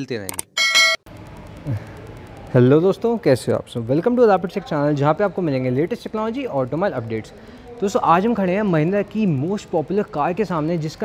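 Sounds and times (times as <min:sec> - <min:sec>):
electronic notification beep: 0:00.5 - 0:01.0.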